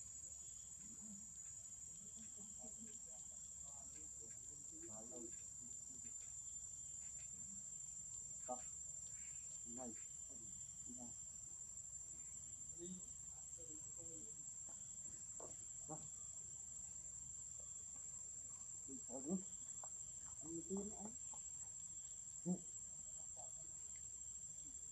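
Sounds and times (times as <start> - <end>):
high-pitched insect drone: 0.0 - 16.7
faint distant voices: 0.6 - 11.2, 12.1 - 16.6.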